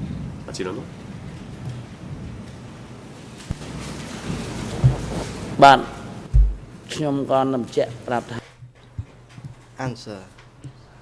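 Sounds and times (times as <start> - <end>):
short low thump: 6.3 - 6.7.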